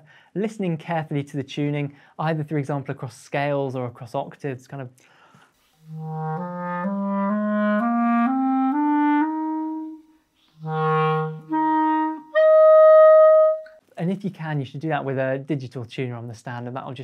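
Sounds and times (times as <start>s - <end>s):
clarinet playing scale and notes: 5.8s - 13.8s.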